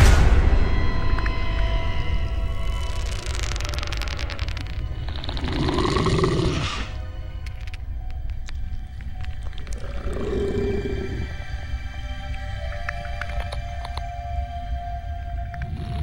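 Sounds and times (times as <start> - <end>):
low music drone: 0.0 - 16.0
creature-like roar: 5.2 - 7.0, 9.8 - 11.4.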